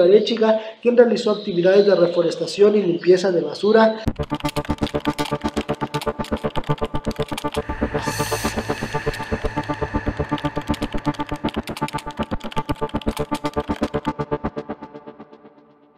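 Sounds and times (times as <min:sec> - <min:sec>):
synthesizer jingle: 0:04.0 - 0:15.6.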